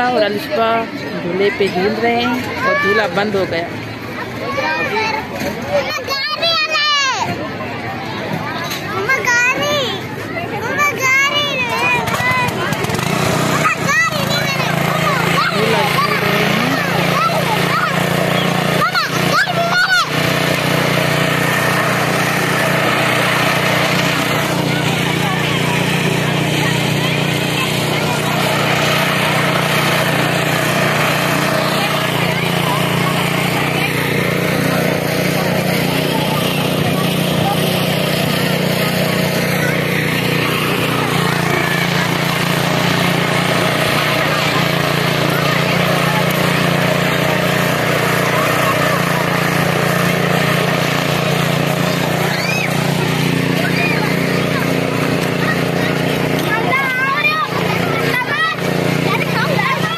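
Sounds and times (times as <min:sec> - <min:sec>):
crowd chatter: 0:00.0 - 0:59.9
low engine drone: 0:12.9 - 0:59.9.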